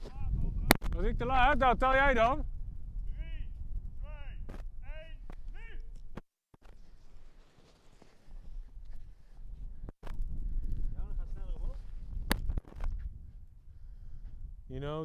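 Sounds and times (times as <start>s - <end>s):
wind rumbling on microphone: 0.0s - 6.2s, 8.2s - 15.0s.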